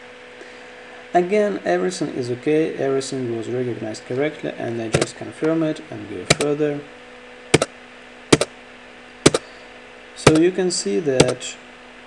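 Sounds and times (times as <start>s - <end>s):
keyboard key clicks: 10.3s - 10.5s, 11.2s - 11.4s.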